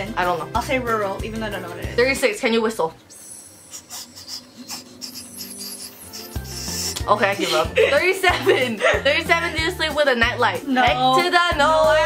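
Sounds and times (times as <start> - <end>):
breathy blowing through lips: 3.1 - 7.8.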